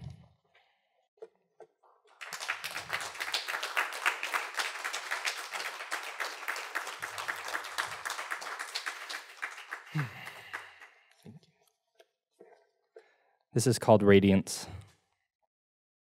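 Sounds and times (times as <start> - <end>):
audience applauding: 2.1 - 11.0.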